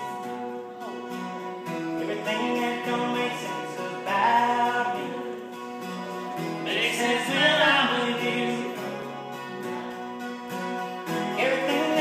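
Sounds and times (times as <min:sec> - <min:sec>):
acoustic guitars playing: 0:00.0 - 0:12.0
person singing: 0:00.0 - 0:12.0.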